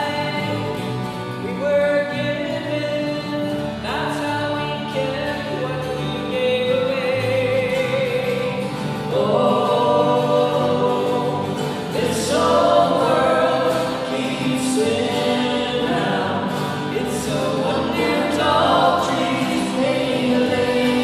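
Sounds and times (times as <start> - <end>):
electric guitar: 0.0 - 21.0
strummed acoustic guitars: 0.0 - 21.0
voices singing in harmony: 8.2 - 21.0.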